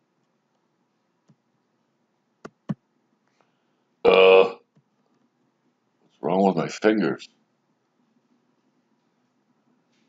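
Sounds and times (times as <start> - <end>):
man's short wordless vocal sound: 4.1 - 4.6.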